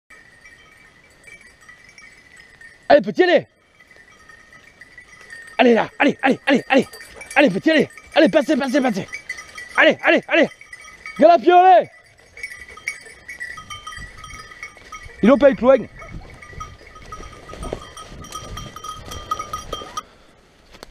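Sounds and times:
dog bells ringing faintly: 0.1s - 20.3s.

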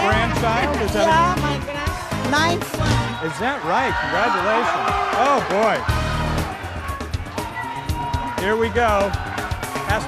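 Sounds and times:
game-show background music: 0.0s - 10.0s.

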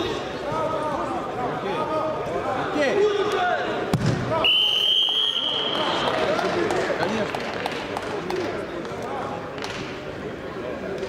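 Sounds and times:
voices talking in echoing hall: 0.0s - 11.0s.

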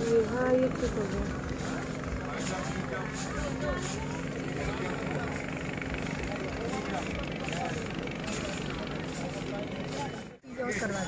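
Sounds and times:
low motor hum: 0.0s - 10.4s
indistinct voices: 0.0s - 11.0s.

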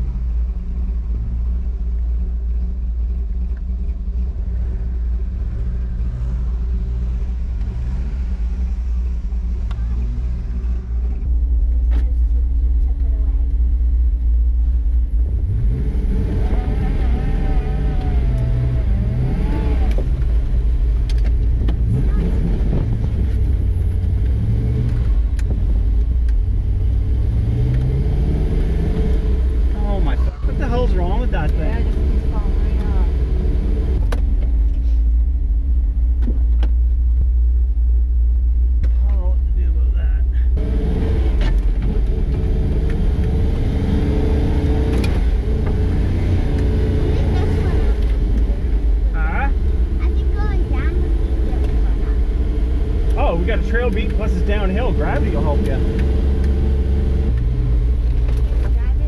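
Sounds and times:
truck engine revving: 3.8s - 59.0s.

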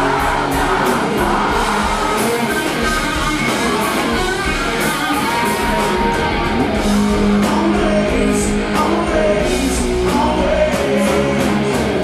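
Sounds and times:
rock band playing: 0.0s - 12.0s.

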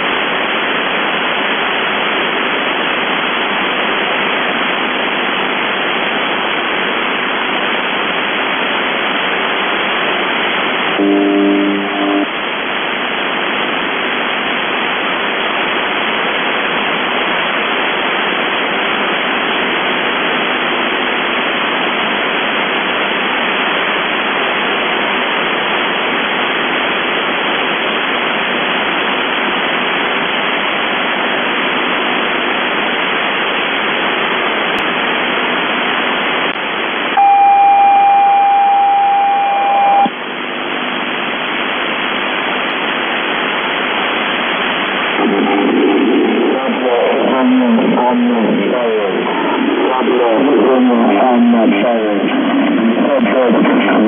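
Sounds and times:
radio static hiss: 0.0s - 54.0s
steady single tone: 10.9s - 12.4s, 37.2s - 40.2s.

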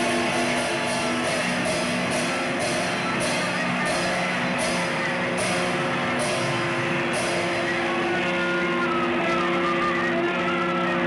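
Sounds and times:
cymbal hit: 0.0s - 8.2s
live band playing: 0.0s - 9.6s
distorted electric guitar drone: 0.0s - 11.0s
high guitar feedback tone: 0.0s - 11.0s.

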